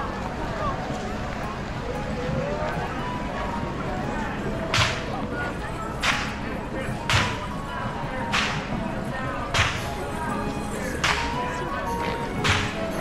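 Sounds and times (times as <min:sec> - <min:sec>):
outdoor crowd hubbub: 0:00.0 - 0:13.0
whip cracking: 0:09.6 - 0:09.9, 0:11.0 - 0:11.3.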